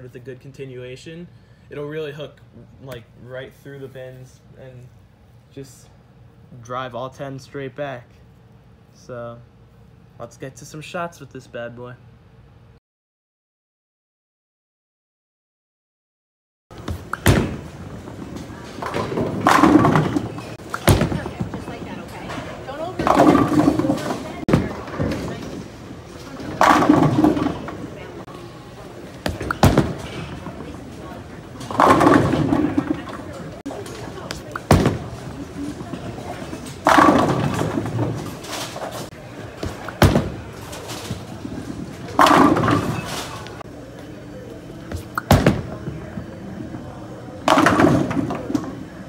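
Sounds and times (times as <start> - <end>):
bowling pins clattering: 16.8 - 43.6, 47.4 - 48.9
bowling ball rolling: 16.8 - 43.7, 44.9 - 49.0
chatter of people: 20.4 - 38.5.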